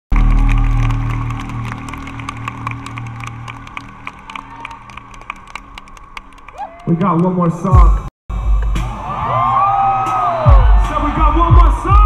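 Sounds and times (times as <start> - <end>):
people clapping: 0.1 - 7.9, 10.5 - 12.0.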